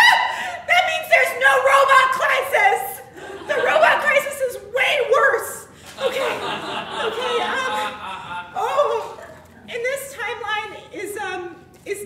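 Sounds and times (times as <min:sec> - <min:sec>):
woman talking excitedly: 0:00.0 - 0:07.9, 0:08.6 - 0:12.0.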